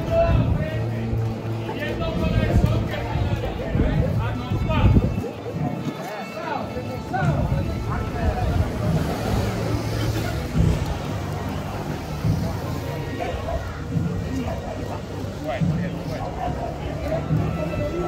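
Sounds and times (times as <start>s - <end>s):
indistinct street chatter: 0.0s - 18.0s.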